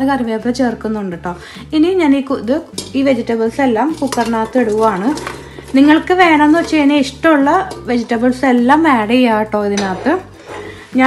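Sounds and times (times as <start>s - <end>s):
woman speaking: 0.0s - 11.0s
vegetables clattering into metal pot: 2.1s - 11.0s.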